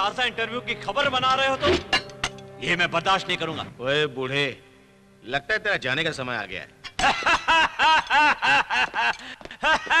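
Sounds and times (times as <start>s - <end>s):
man laughing loudly: 7.0s - 10.0s.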